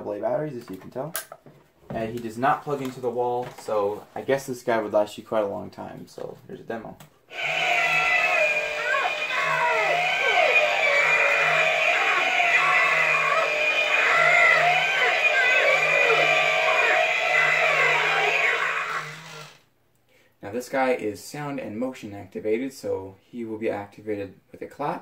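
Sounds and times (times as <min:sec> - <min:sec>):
recorded man screaming and moaning: 0:07.3 - 0:19.4.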